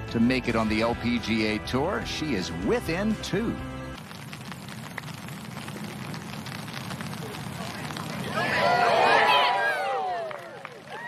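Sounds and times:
crackly background hiss: 3.8 - 11.0
murmur of spectators: 5.7 - 11.0.

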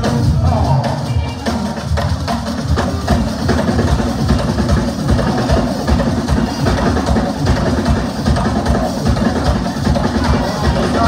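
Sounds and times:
live band with drum kit: 0.0 - 11.0.

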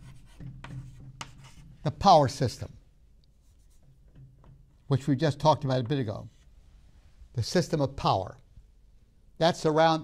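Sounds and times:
chalk scratching on chalkboard: 0.0 - 1.8, 3.4 - 4.0.

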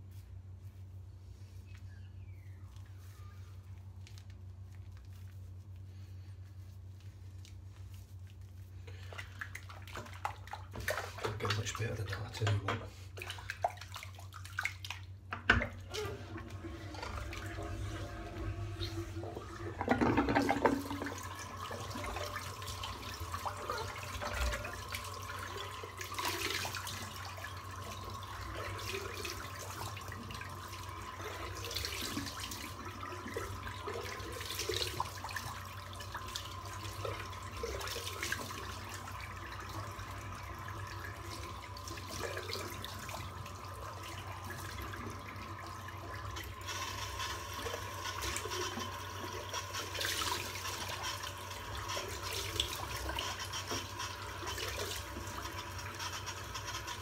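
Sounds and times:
water running from a tap: 8.9 - 57.0.

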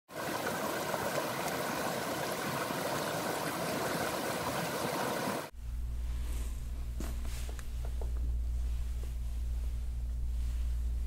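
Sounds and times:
water rushing over cascades: 0.1 - 5.5
low steady hum: 5.5 - 11.0.

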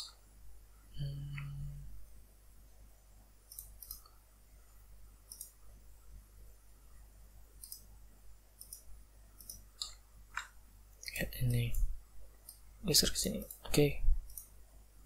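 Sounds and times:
low steady hum: 0.0 - 15.0
computer mouse buttons clicking: 3.5 - 4.2, 5.3 - 5.6, 7.6 - 7.9, 8.6 - 10.6.

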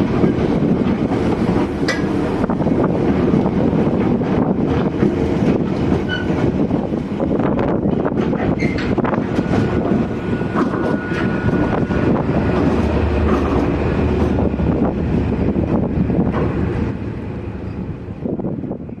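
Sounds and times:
diesel locomotive rumbling by: 0.0 - 19.0.

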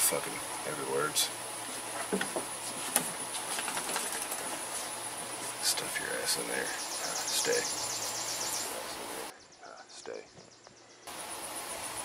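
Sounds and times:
insects droning: 0.0 - 12.0.

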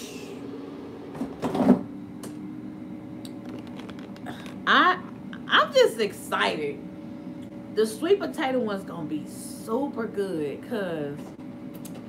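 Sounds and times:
steady low hum: 0.0 - 12.0
small click: 11.7 - 12.0.

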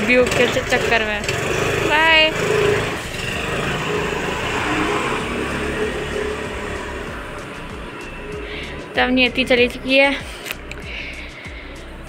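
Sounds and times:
motor scooter engine pulling away: 0.0 - 10.2.

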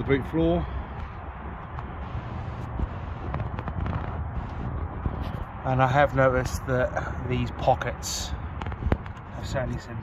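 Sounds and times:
wind on microphone: 0.0 - 5.8, 8.3 - 10.0
microphone handling noise: 0.9 - 5.6, 8.5 - 9.4.

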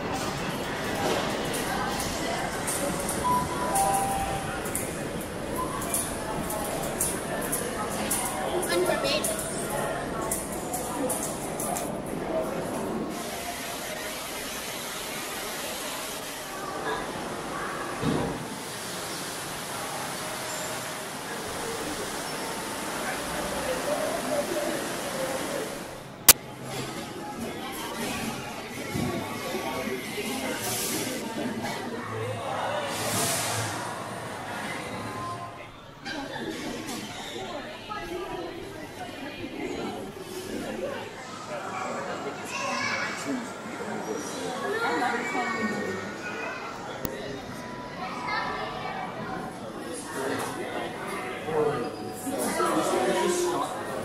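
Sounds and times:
background voices talking: 0.0 - 14.6
hall background noise: 0.0 - 54.0
children's voices: 8.1 - 10.0, 42.2 - 43.7, 44.5 - 49.5.

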